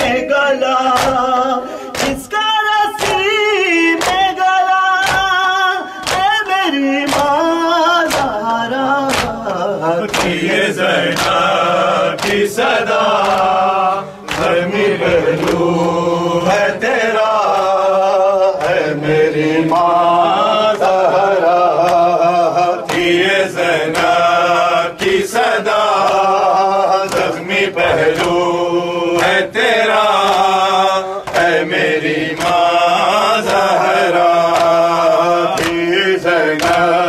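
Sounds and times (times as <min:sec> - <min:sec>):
men chanting a lament: 0:00.0 - 0:37.0
hands slapping chests: 0:00.8 - 0:37.0.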